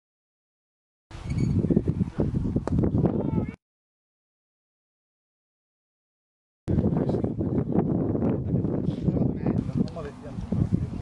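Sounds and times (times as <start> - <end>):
wind buffeting microphone: 1.1 - 3.6, 6.7 - 11.0.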